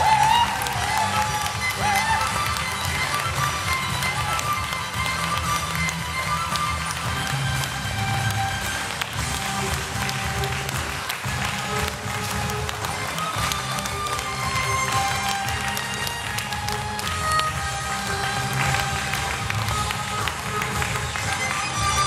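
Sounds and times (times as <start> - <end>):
violins playing melody: 0.0 - 22.0.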